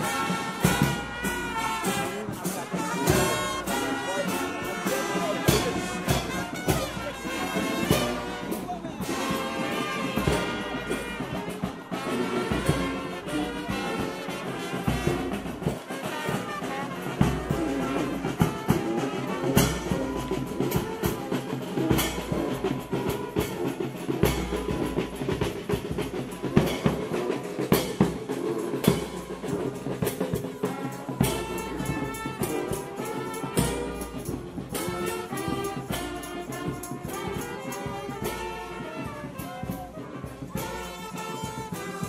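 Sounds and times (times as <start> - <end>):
brass band playing: 0.0 - 42.0
drums beating: 0.0 - 42.0.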